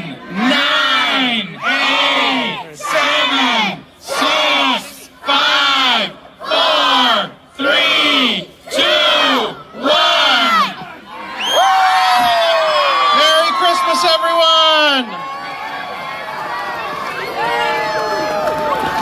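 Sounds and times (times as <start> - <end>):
crowd shouting countdown: 0.0 - 19.0
crowd cheering and whooping: 11.2 - 19.0.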